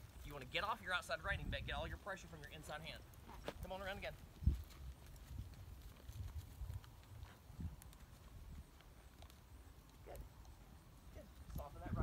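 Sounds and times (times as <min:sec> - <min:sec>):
horse hooves on dirt: 0:00.0 - 0:12.0.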